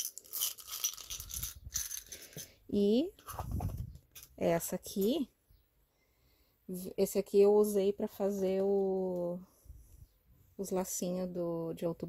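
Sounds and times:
plastic pieces clattering into jar: 0.0s - 2.5s.

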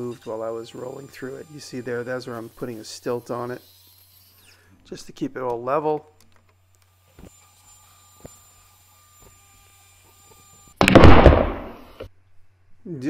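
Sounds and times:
loud bang: 10.8s - 11.9s.

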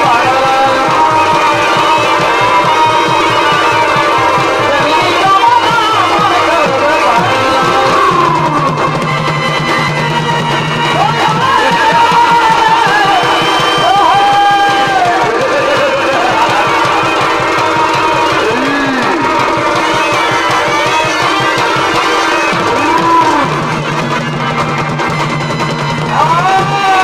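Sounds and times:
fast dense drumming: 0.0s - 27.0s
wind instrument melody: 0.0s - 27.0s.

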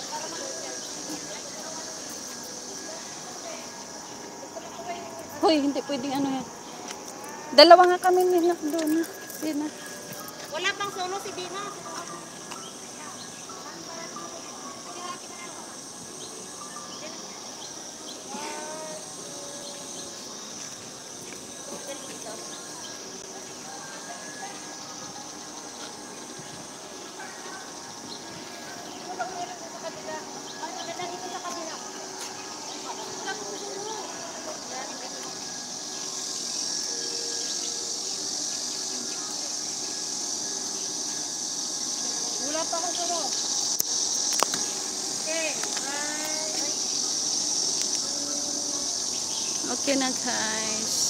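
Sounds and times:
faint voices: 0.0s - 51.0s
high-pitched insect drone: 0.0s - 51.0s.

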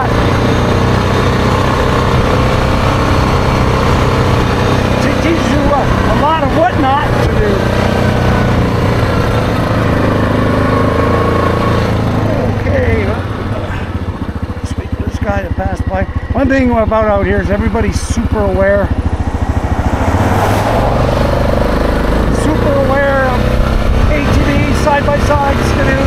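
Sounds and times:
atv engine running: 0.0s - 26.0s.

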